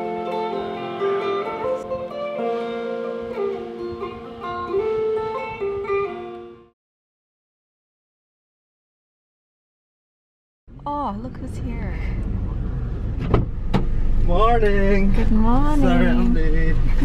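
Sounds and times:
plucked lute melody with drone: 0.0 - 6.7.

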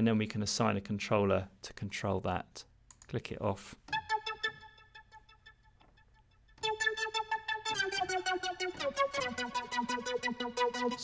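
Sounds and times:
synth notes with delay: 3.9 - 11.0.

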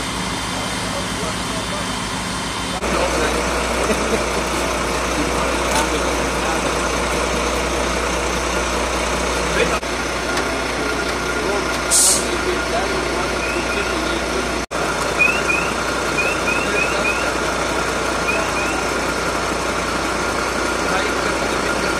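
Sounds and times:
heavy vehicle engine idling: 0.0 - 21.9
air hiss: 11.9 - 12.4
short high chirps: 13.3 - 14.1, 15.2 - 17.4, 18.2 - 19.0.

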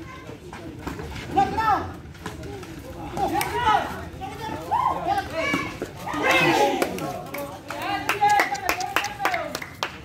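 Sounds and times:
spectators shouting: 3.3 - 7.1.

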